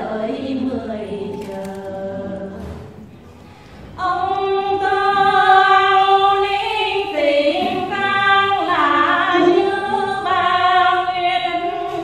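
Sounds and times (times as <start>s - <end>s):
woman singing unaccompanied: 0.0s - 2.9s, 4.0s - 12.0s.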